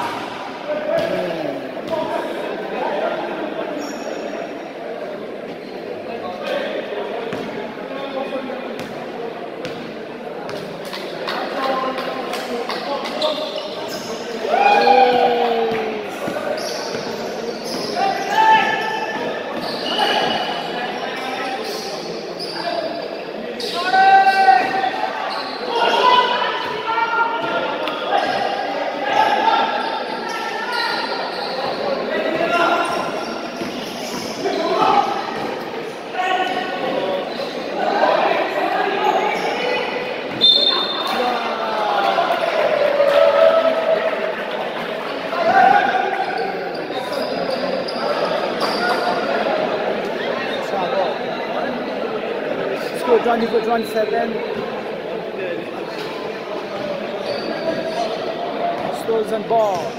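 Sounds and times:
people shouting in echoing hall: 14.1 - 20.6, 23.7 - 33.6, 34.3 - 47.3.

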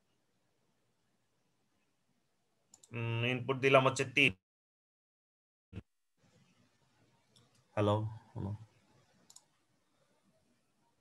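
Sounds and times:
computer mouse double click: 9.3 - 9.5.

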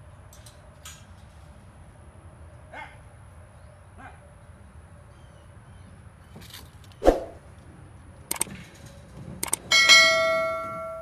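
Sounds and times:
sharp clicks: 8.3 - 8.6, 9.4 - 9.7
small bell ringing: 9.7 - 11.0.

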